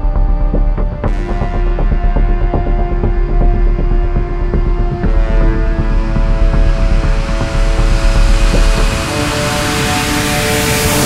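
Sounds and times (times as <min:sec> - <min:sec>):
music with sustained chords: 0:00.0 - 0:11.0
jet airliner engine noise: 0:05.5 - 0:11.0.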